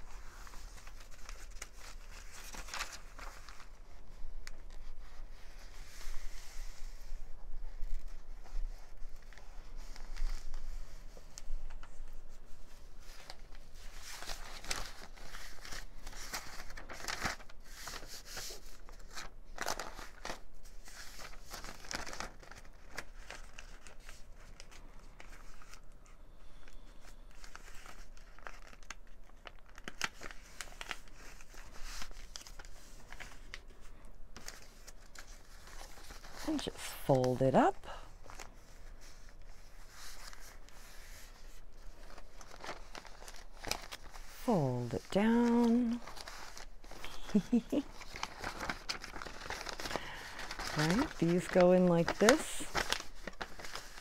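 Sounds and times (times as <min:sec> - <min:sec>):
paper rustling and crinkling: 0:00.0 - 0:54.0.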